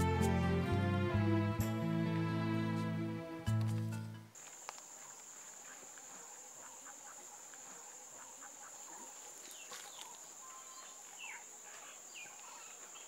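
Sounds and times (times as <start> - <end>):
high insect buzz: 3.6 - 13.0.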